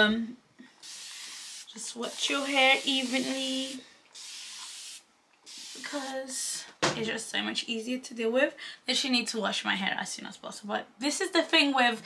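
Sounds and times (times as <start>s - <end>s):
spray bottle hissing: 0.8s - 6.2s.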